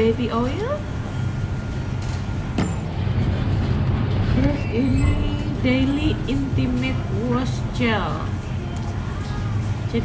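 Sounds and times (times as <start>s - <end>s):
cafe room noise rumble: 0.0s - 10.0s.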